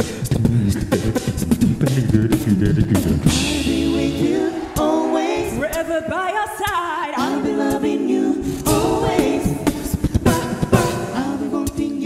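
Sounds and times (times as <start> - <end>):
a cappella group singing: 0.0 - 12.0
vocal percussion beat: 0.0 - 12.0.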